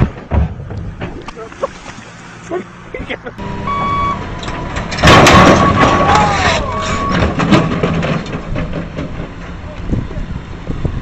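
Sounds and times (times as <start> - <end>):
low rumbling: 0.0 - 11.0
heavy machine crashing impact: 3.5 - 9.6.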